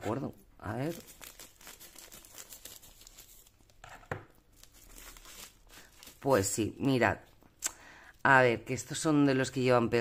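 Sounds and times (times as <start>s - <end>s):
plastic crinkling: 0.7s - 7.4s.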